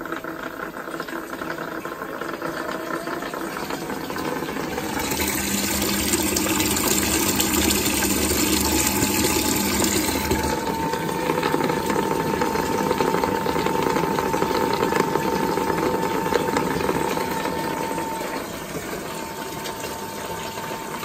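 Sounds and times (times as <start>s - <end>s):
water gushing into tank: 0.0s - 21.0s
pump whining: 0.2s - 21.0s.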